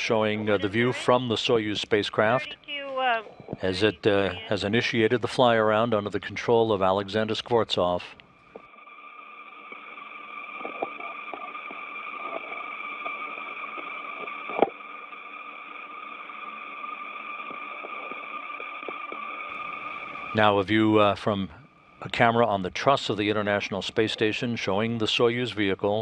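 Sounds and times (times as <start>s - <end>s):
sustained high tones: 0.0s - 7.4s, 8.6s - 22.4s
radio channel hiss and hum: 0.0s - 26.0s.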